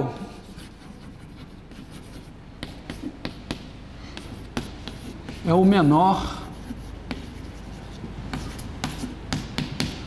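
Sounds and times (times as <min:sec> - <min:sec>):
chalk scratching on blackboard: 0:00.0 - 0:10.0
chalk tapping on board: 0:00.1 - 0:10.0.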